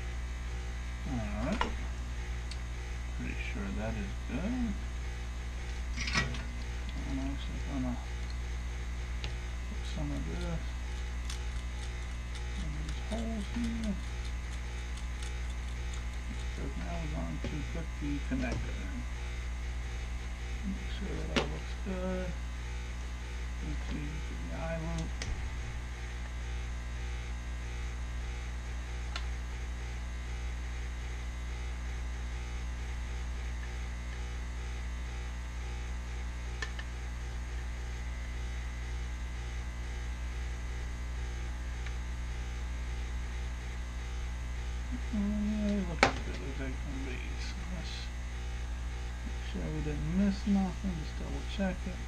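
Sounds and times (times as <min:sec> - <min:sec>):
low electrical hum: 0:00.0 - 0:52.0
sharp click: 0:36.6 - 0:36.9.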